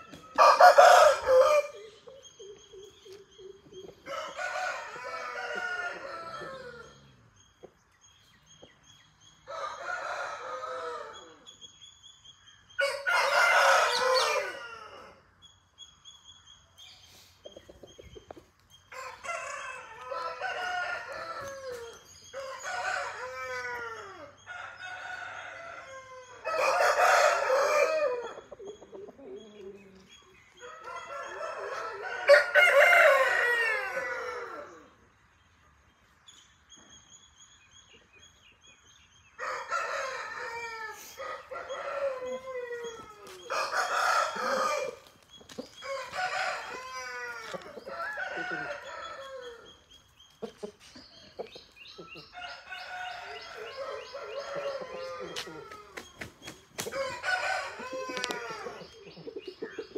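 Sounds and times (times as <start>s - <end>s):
roosters crowing: 0.0s - 2.0s, 3.9s - 7.3s, 9.4s - 11.5s, 12.8s - 15.2s, 18.9s - 30.0s, 30.6s - 35.0s, 39.3s - 49.9s, 52.0s - 59.9s.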